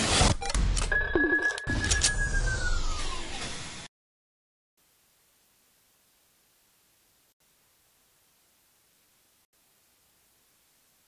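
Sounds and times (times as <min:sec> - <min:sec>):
high ringing tone sliding down: 0:01.5 - 0:03.4.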